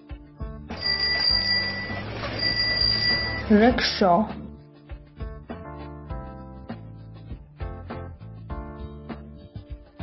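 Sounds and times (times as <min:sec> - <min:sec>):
light background music: 0:00.0 - 0:10.0
bicycle bell ringing: 0:00.7 - 0:03.7.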